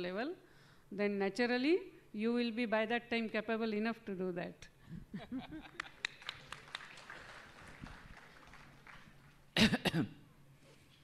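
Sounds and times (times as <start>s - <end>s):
faint audience applause: 5.8s - 9.6s.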